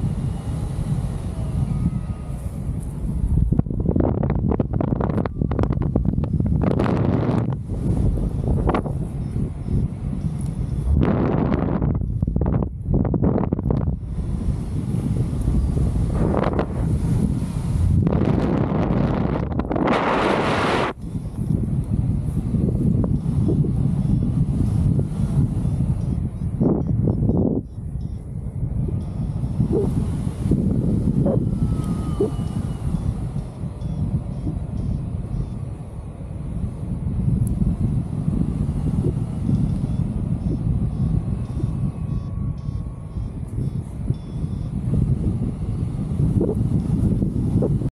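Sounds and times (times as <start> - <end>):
rush of wind: 0.0 - 47.9
wind buffeting microphone: 0.0 - 47.9.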